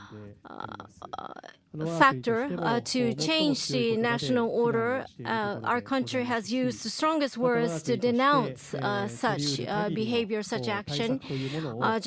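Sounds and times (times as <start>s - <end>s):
person speaking: 0.0s - 12.0s.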